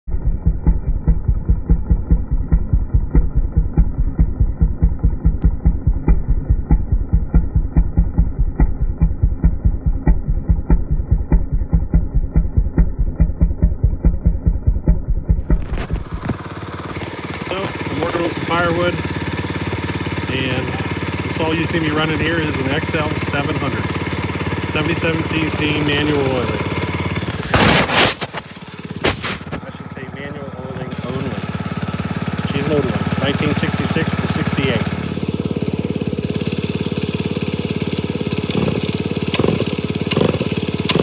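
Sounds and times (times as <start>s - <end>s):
outdoor ambience: 0.1s - 23.2s, 23.8s - 41.0s
muffled chainsaw engine pulsing: 0.1s - 41.0s.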